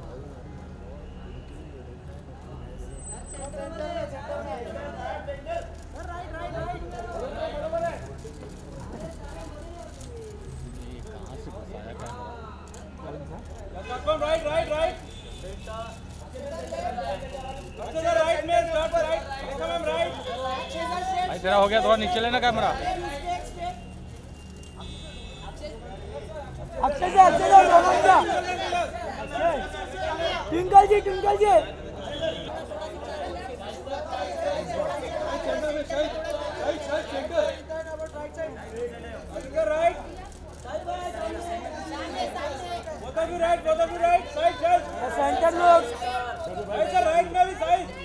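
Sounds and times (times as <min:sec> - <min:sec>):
photographers calling out: 0:12.1 - 0:48.0.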